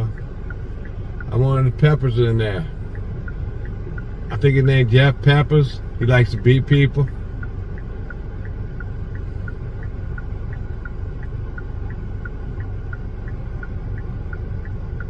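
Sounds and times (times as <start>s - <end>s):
car engine idling: 0.0s - 15.0s
car indicator ticking: 0.0s - 15.0s.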